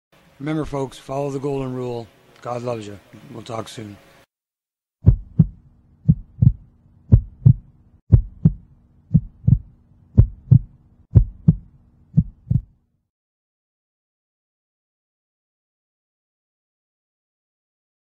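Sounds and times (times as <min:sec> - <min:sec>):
heartbeat double thumps: 0:05.0 - 0:12.7
faint steady hum: 0:05.1 - 0:12.7.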